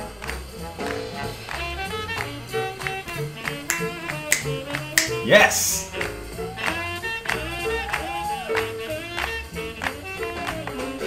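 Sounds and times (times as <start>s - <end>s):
big band playing jazz: 0.0s - 11.0s
rising sweep with hiss: 0.3s - 4.6s.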